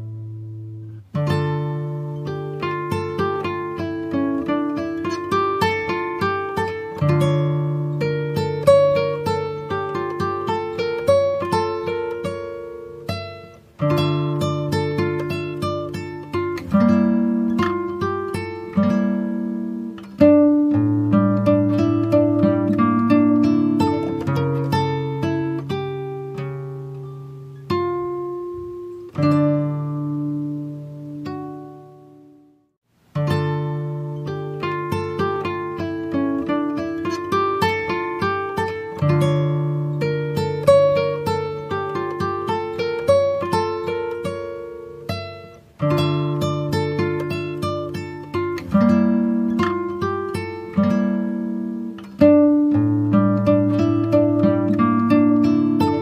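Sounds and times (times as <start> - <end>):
acoustic guitar picking: 0.0 - 56.0.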